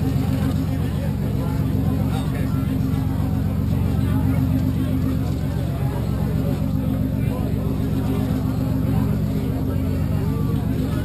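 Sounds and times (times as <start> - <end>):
engine droning steadily: 0.0 - 11.0.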